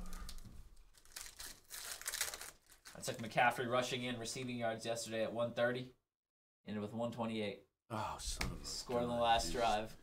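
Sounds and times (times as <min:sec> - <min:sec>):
foil wrapper crinkling and tearing: 0:00.0 - 0:03.3.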